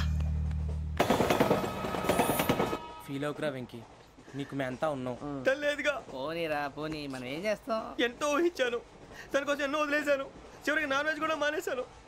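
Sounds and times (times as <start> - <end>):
train clattering on tracks: 0.5 - 3.1.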